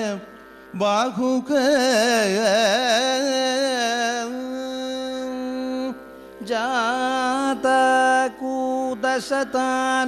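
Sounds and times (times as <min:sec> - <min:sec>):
person singing long ornamented notes: 0:00.0 - 0:10.0.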